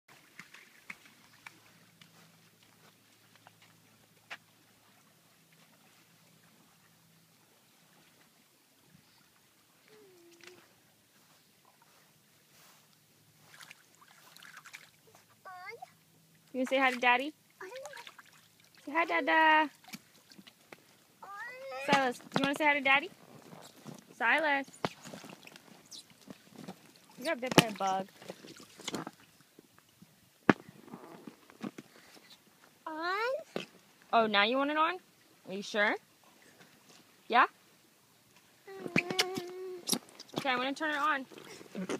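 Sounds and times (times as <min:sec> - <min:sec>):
small water splashes: 0:00.1 - 0:10.9, 0:13.4 - 0:15.3, 0:16.3 - 0:22.5, 0:24.7 - 0:30.0
faint water sloshing: 0:00.1 - 0:41.9.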